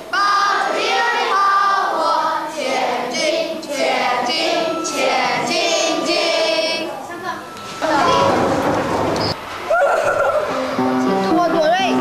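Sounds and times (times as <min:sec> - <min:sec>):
children singing in unison: 0:00.0 - 0:09.0.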